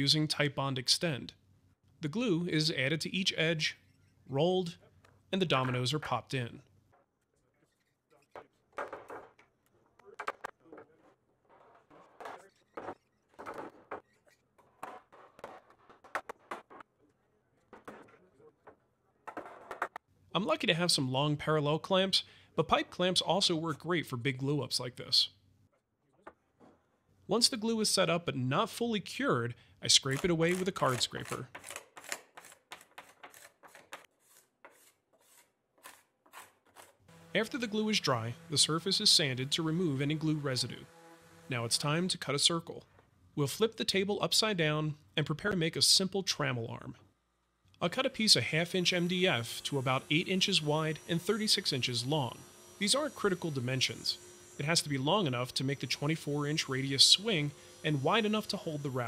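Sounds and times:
card scraper scraping wood: 0:30.0 - 0:37.0.

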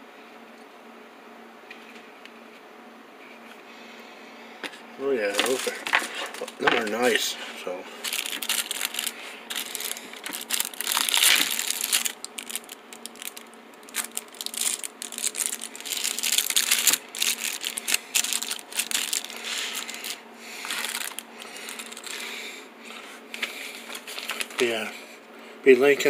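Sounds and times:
plastic bags crinkling: 0:05.3 - 0:07.2, 0:07.9 - 0:22.4, 0:23.8 - 0:24.8
small parts clicking and knocking: 0:08.0 - 0:22.1.

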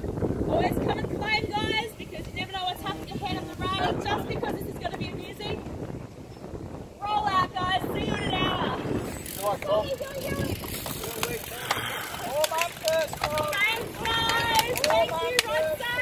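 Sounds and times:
people chattering: 0:07.0 - 0:16.0
cleats clicking into pedals: 0:08.9 - 0:16.0
bicycle freewheels ticking: 0:09.0 - 0:16.0.

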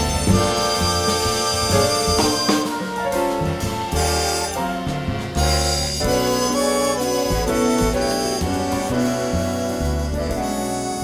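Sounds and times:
jazz big band playing: 0:00.0 - 0:11.0.

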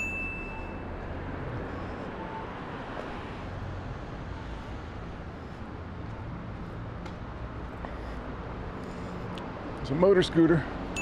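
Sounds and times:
high clear ding: 0:00.0 - 0:00.8
street traffic rumble: 0:00.0 - 0:11.0.

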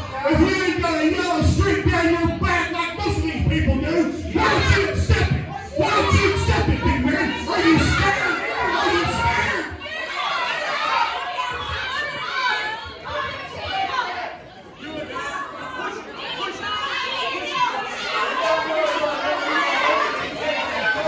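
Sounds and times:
overlapping voices in a hall: 0:00.0 - 0:21.0.

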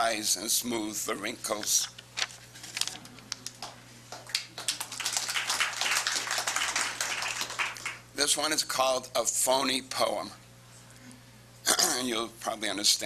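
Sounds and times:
steady low hum: 0:00.0 - 0:13.0
paper rustling and shuffling: 0:01.4 - 0:03.6.

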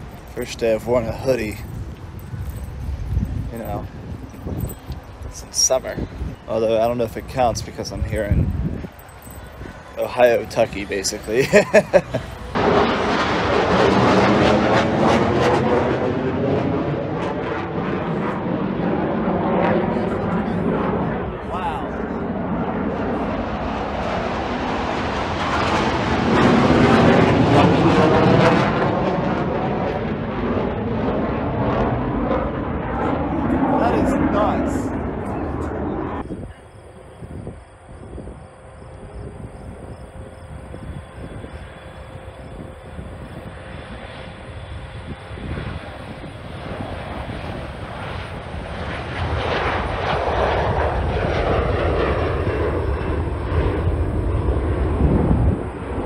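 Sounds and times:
airfield background: 0:00.0 - 0:56.0
jet aircraft passing overhead: 0:00.0 - 0:56.0
jet engines on takeoff: 0:00.0 - 0:56.0.

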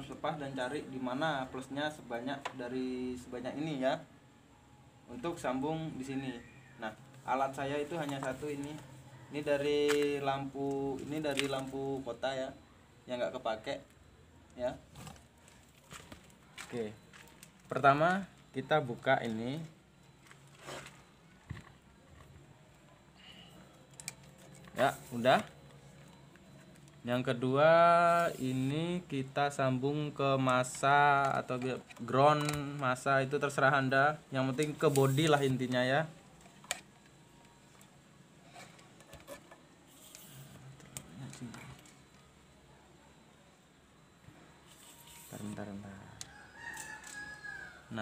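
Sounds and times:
plastic rustle: 0:19.2 - 0:21.8.

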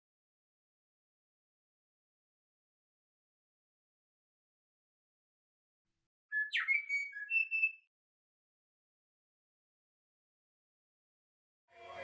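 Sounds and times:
bird-like whistled call: 0:06.3 - 0:07.9.

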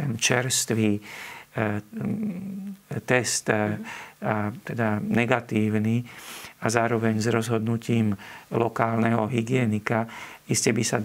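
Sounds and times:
man hesitating mid-sentence: 0:01.6 - 0:04.0.

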